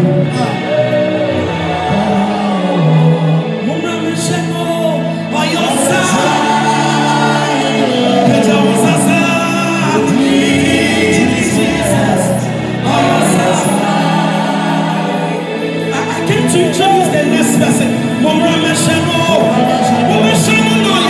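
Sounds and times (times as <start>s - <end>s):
backing singers: 0.0s - 21.0s
keyboard: 0.0s - 21.0s
lead singer: 0.0s - 21.0s.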